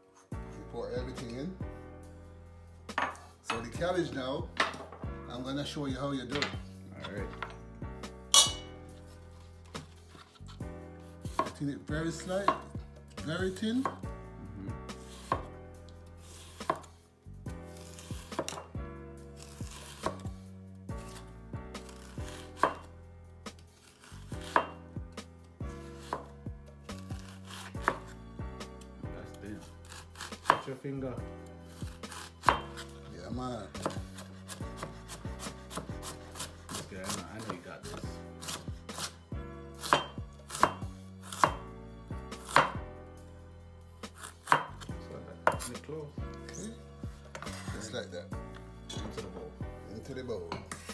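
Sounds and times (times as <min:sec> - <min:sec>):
knife knocking on cutting board: 0:02.9 - 0:03.6
knife slicing cabbage on wooden board: 0:09.0 - 0:11.6, 0:14.9 - 0:15.5, 0:16.2 - 0:17.0, 0:17.7 - 0:18.7, 0:19.4 - 0:20.4, 0:21.0 - 0:22.9, 0:23.5 - 0:24.8, 0:25.8 - 0:28.2, 0:29.6 - 0:30.7, 0:31.7 - 0:33.0, 0:33.8 - 0:39.2, 0:39.8 - 0:41.6, 0:42.3 - 0:42.8, 0:44.0 - 0:45.8.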